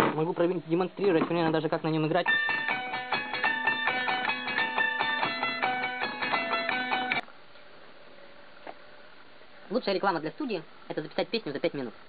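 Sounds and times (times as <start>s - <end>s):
faint room hiss: 0.0s - 12.0s
plucked zither melody: 2.2s - 7.2s.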